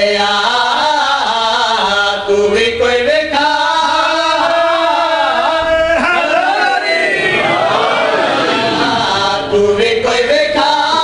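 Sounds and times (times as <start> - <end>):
man chanting devotional verse: 0.0 - 7.1, 8.8 - 11.0.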